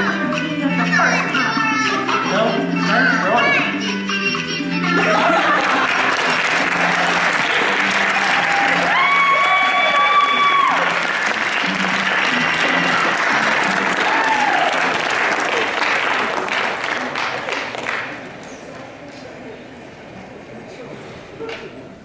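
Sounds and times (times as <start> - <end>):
long high cheer: 5.1 - 16.6
audience applauding and cheering: 5.1 - 18.4.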